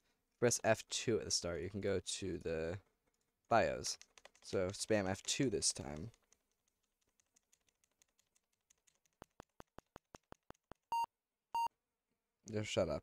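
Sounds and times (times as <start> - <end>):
keyboard key tapping: 4.0 - 10.8.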